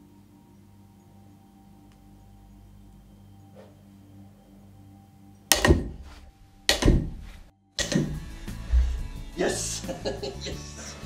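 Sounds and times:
music: 0:00.0 - 0:11.0
magnet snapping with sharp clacks: 0:05.5 - 0:08.2
low thump: 0:05.5 - 0:09.3.

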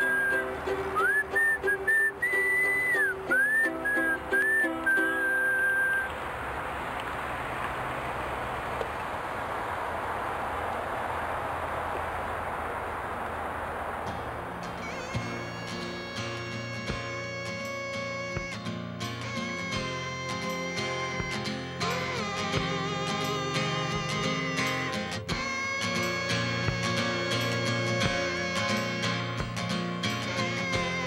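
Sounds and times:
whistled tune: 0:00.0 - 0:06.1
steady hiss: 0:05.0 - 0:31.0.

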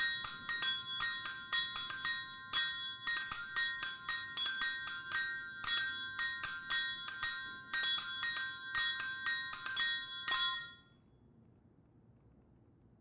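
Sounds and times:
bright metallic percussion strikes: 0:00.0 - 0:10.8
bell tones ringing: 0:00.0 - 0:10.9.

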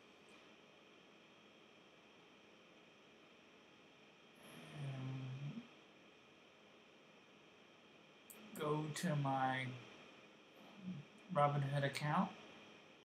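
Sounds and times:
faint hiss: 0:00.0 - 0:13.0
man humming: 0:04.5 - 0:05.7.

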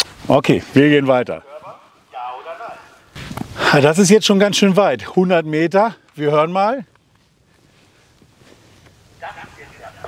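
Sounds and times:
man speaking: 0:00.3 - 0:03.0, 0:03.6 - 0:06.9, 0:09.2 - 0:10.0.

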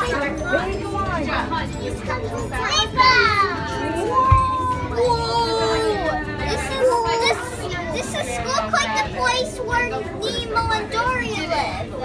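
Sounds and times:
children exclaiming: 0:02.0 - 0:12.0.

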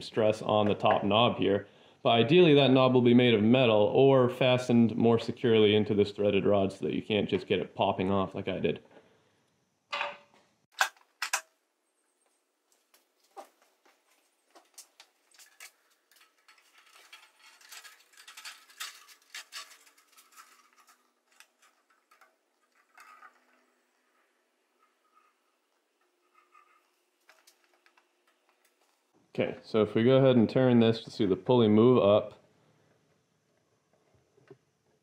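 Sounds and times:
quiet ticks and rubbing: 0:12.1 - 0:29.2.

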